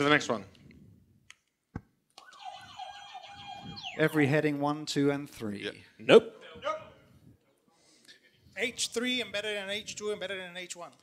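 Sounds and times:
warbling quiz buzzer: 0:02.3 - 0:04.2.

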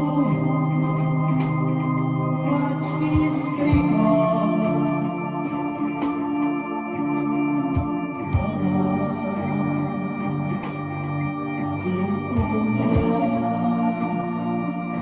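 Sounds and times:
deep bass notes: 0:00.0 - 0:15.0
organ-like keyboard chords: 0:00.0 - 0:15.0.

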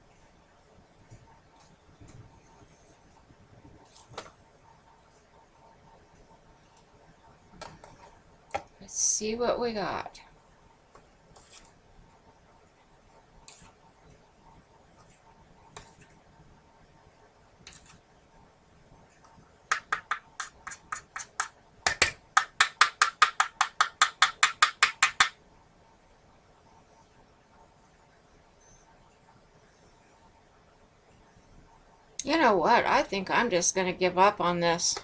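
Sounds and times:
plastic spoon rubbing on paper: 0:11.4 - 0:11.8, 0:20.0 - 0:21.5.

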